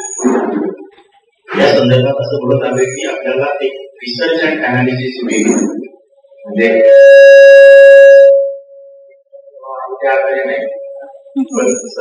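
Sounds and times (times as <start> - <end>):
microphone feedback howl: 1.5 - 12.0.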